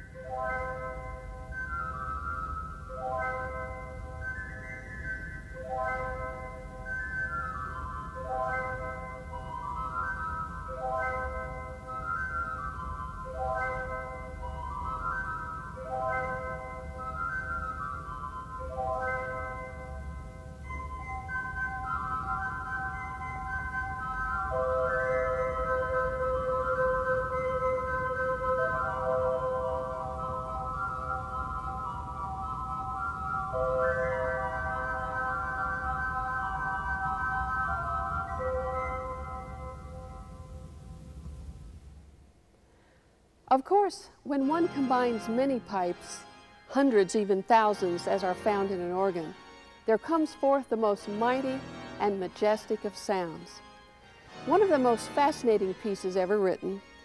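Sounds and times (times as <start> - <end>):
pipe organ soft chords: 44.4 - 57.0.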